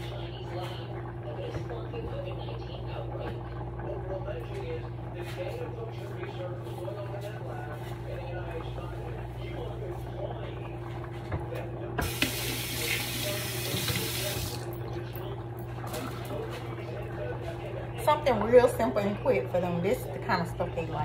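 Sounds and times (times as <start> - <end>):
steady low hum: 0.0 - 21.0
kitchen tap running: 11.9 - 16.5.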